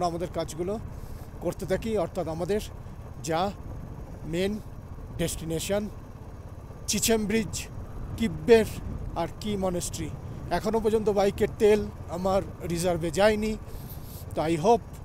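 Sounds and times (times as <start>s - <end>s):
man talking: 0.0s - 0.8s, 1.4s - 3.6s, 4.2s - 6.0s, 6.9s - 13.6s, 14.3s - 15.0s
motorcycle engine running: 0.0s - 15.0s.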